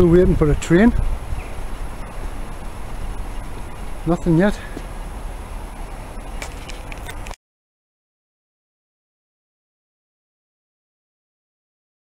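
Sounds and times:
low background rumble: 0.0 - 7.4.

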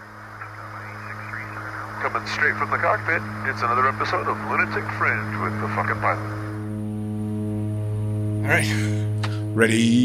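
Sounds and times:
faint wavering chatter: 0.0 - 6.6
steady low hum: 0.0 - 10.0.

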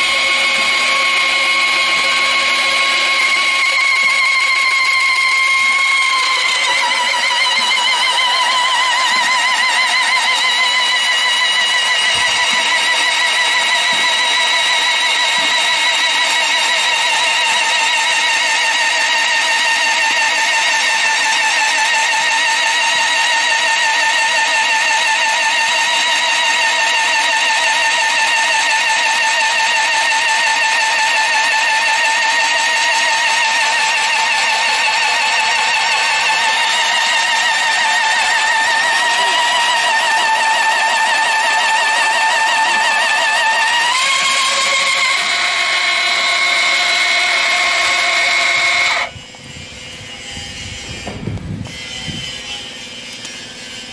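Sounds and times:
drill motor whining: 0.0 - 53.9.

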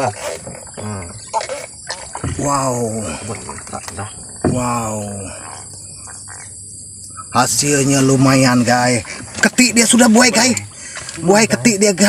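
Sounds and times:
high-pitched insect drone: 0.0 - 12.0.

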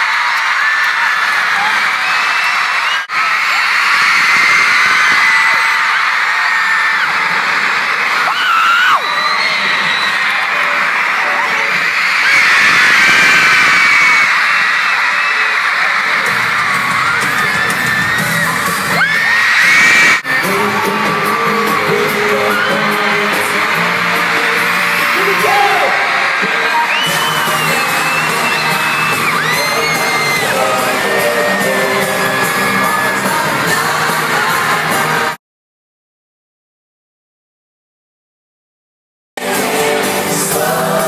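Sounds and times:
crowd screaming: 0.0 - 35.4
live pop music: 6.8 - 35.4, 39.4 - 41.0.

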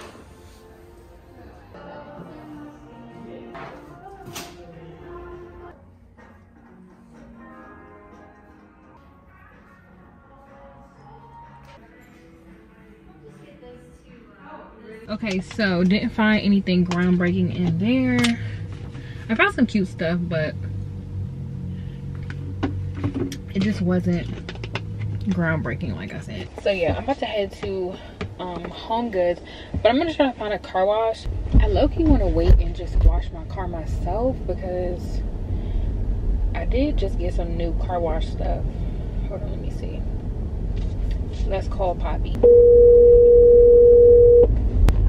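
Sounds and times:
car rumble: 15.3 - 30.1, 31.2 - 45.0
phone ringback tone: 42.4 - 44.5.

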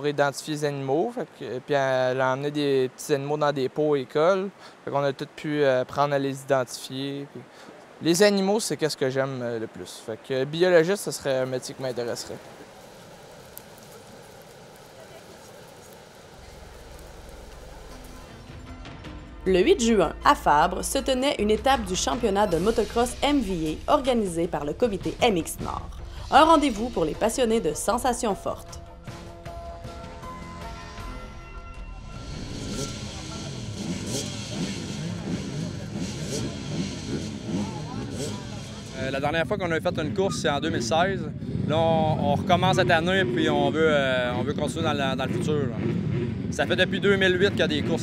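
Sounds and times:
creek water running: 0.0 - 18.5
dirt bike engines revving: 7.3 - 18.4, 32.2 - 48.0.

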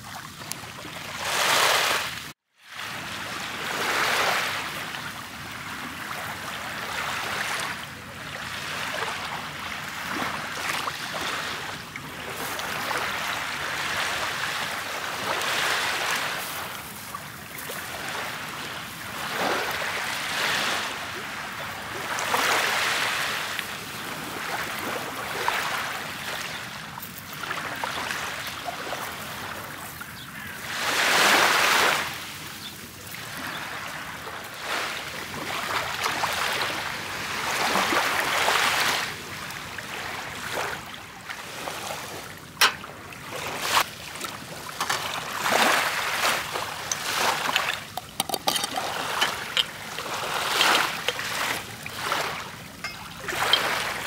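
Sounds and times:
waves washing onto pebble shore: 9.8 - 32.6, 41.4 - 54.0.

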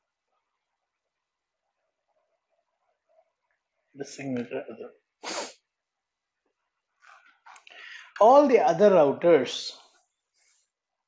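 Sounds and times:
sharp burst of breath: 5.2 - 5.6.

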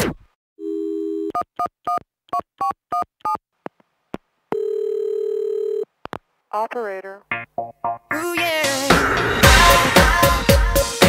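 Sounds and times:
telephone ringing tone: 0.6 - 1.4, 4.5 - 5.9.

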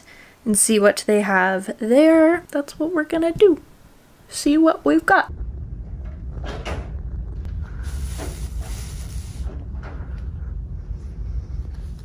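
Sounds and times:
low machinery rumble: 5.3 - 12.0
hiss: 7.7 - 9.6.

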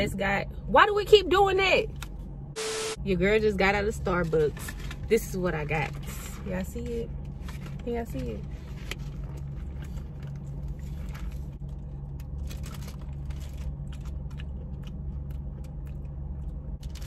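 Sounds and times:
low car hum: 0.0 - 17.0
paper crinkling and rustling: 7.2 - 14.9.

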